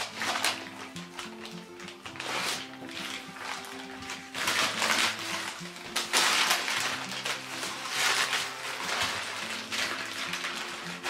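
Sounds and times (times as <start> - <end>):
background music: 0.0 - 11.0
baking paper crinkling: 0.0 - 11.0.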